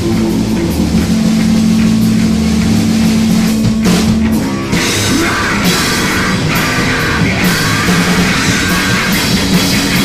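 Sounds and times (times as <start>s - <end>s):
distorted guitar drone: 0.0s - 10.0s.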